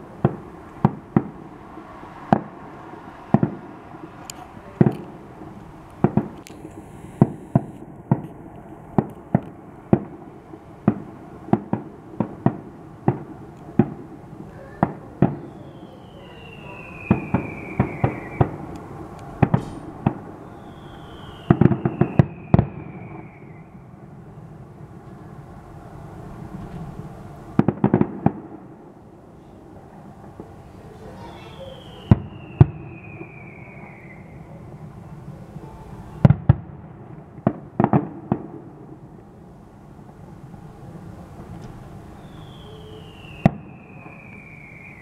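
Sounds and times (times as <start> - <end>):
firework shells bursting: 3.3 - 10.2, 17.0 - 23.4
falling firework whistles: 14.6 - 18.7, 19.4 - 24.0, 31.1 - 35.0, 42.0 - 45.0.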